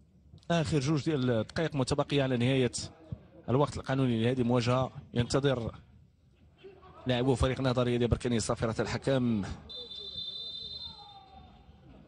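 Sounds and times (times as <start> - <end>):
referee's whistle blast: 9.7 - 11.3.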